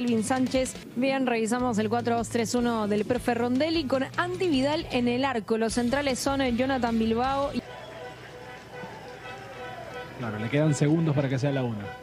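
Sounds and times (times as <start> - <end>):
background music: 0.0 - 12.0
distant voices: 7.6 - 12.0.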